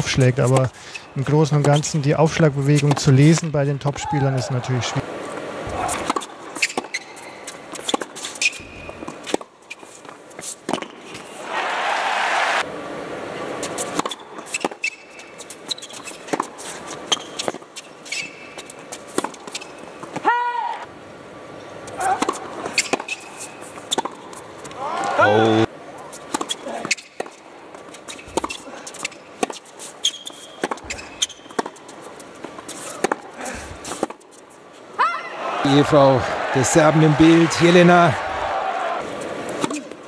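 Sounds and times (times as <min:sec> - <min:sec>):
shoes squeaking on court: 0:00.4 - 0:03.3, 0:05.7 - 0:11.4, 0:13.6 - 0:20.3, 0:21.8 - 0:25.2, 0:26.0 - 0:34.8
tennis ball bouncing: 0:05.9 - 0:09.5, 0:10.6 - 0:11.2, 0:13.7 - 0:15.2, 0:15.8 - 0:20.2, 0:21.9 - 0:24.8, 0:26.2 - 0:34.3
racket striking tennis ball: 0:10.6 - 0:11.2, 0:22.0 - 0:23.2, 0:30.3 - 0:31.8, 0:32.4 - 0:33.3
person shouting: 0:20.2 - 0:20.8, 0:24.8 - 0:25.7, 0:35.0 - 0:35.4.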